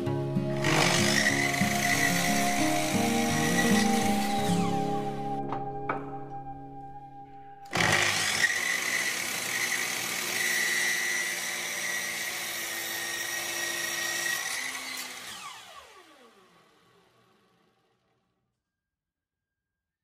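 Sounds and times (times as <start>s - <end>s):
power tool motor whining: 0.5s - 5.4s, 7.7s - 18.0s.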